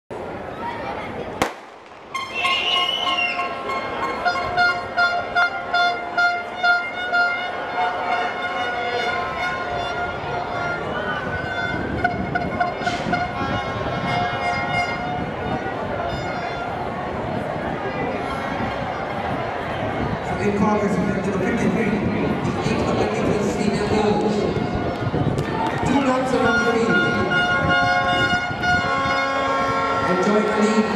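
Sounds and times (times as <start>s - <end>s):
stadium crowd cheering: 0.1s - 30.9s
sharp crack: 1.4s - 2.8s
horns blowing long notes: 2.1s - 17.0s, 25.9s - 30.9s.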